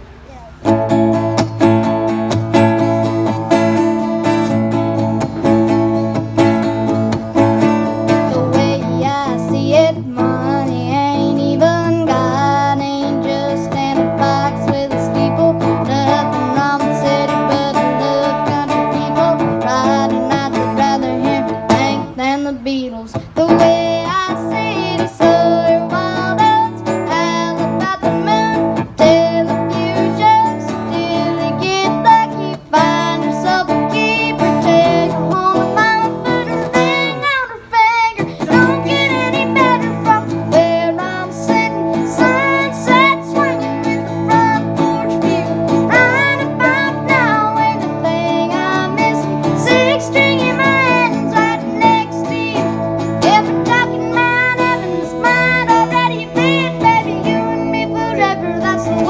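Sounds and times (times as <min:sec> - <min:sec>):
boy singing through microphone: 0:00.0 - 0:59.0
strummed acoustic guitars: 0:00.0 - 0:59.0.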